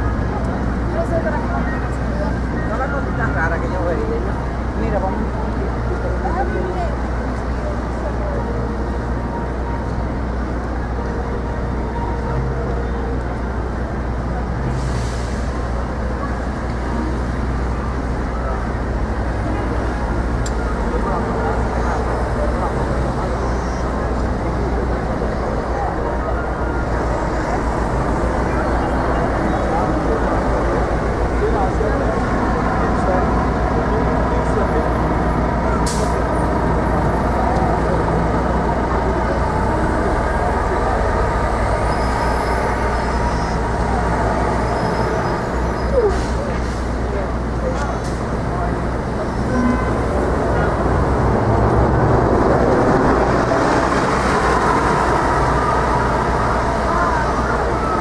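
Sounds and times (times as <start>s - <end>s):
people talking on sidewalk: 0.0s - 58.0s
traffic engine and tyre rumble: 0.0s - 58.0s.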